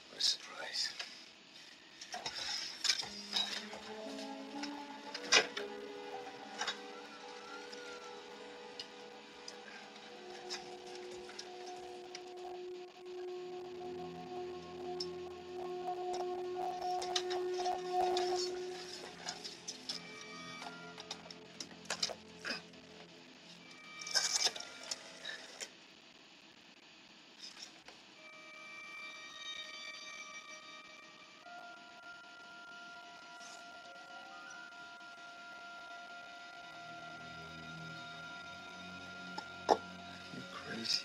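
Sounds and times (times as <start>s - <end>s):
film music with held notes: 0.0s - 25.7s, 28.2s - 41.0s.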